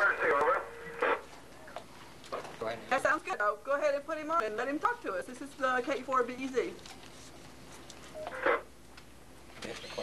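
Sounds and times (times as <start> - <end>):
burst of radio static: 0.0 - 1.3.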